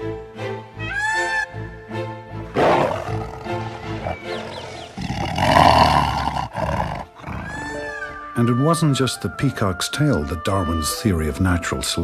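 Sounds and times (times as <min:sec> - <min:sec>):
background music: 0:00.0 - 0:12.0
tiger roaring: 0:02.5 - 0:07.8.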